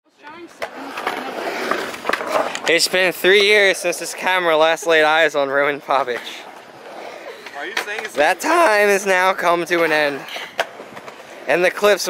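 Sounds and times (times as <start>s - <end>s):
skateboard wheels rolling on concrete: 0.1s - 12.0s
skateboard clacks: 0.2s - 5.1s, 5.7s - 12.0s.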